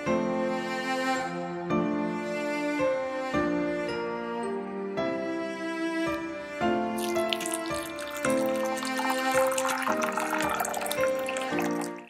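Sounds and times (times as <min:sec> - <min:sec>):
slow cello and piano music: 0:00.0 - 0:12.0
tea pouring into a cup: 0:06.9 - 0:12.0.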